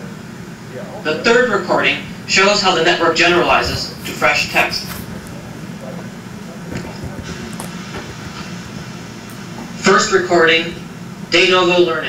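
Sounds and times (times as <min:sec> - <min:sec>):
low rumbling noise: 0:00.0 - 0:11.4.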